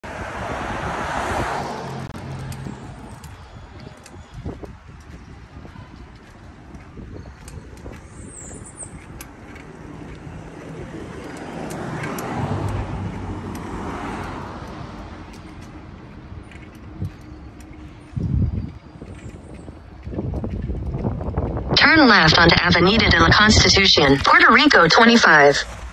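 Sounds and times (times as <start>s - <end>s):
low road hum: 0.0s - 25.9s
vehicles passing: 0.0s - 25.9s.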